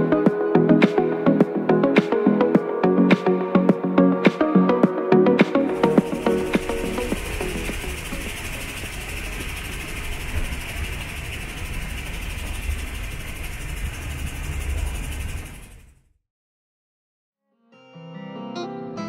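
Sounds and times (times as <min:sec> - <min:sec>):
steam train rumbling: 0:05.7 - 0:16.1.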